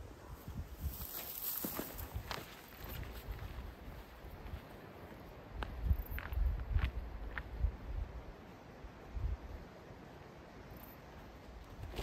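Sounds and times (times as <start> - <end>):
footsteps on gravel and dirt: 0.8 - 7.6.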